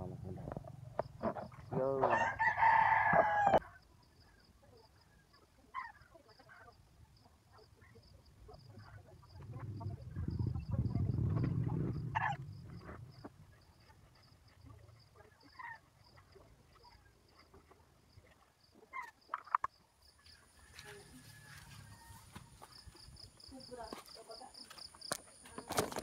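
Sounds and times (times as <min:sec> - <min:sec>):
rooster crowing: 0:02.0 - 0:03.6, 0:20.6 - 0:23.1
soft low noise: 0:08.7 - 0:15.2.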